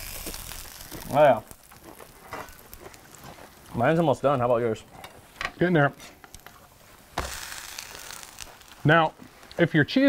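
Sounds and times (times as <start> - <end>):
sandwich sizzling on griddle: 0.0 - 10.0.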